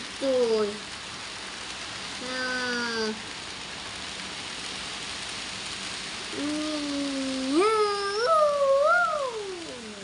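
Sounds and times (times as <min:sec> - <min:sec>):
long drawn-out howl: 0:06.3 - 0:10.0.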